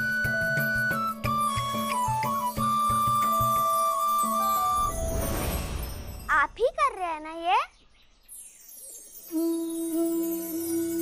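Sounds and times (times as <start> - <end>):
flute long note: 9.3 - 11.0.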